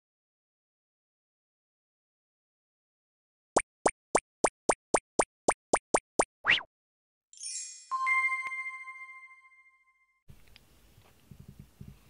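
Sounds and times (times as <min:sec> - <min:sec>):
cartoon popping steps: 0:03.6 - 0:06.7
shimmering chime and ding: 0:07.4 - 0:10.2.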